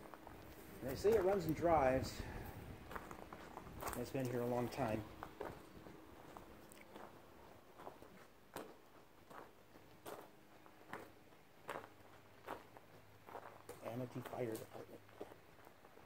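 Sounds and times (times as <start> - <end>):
footsteps on gravel and grass: 0.0 - 16.0.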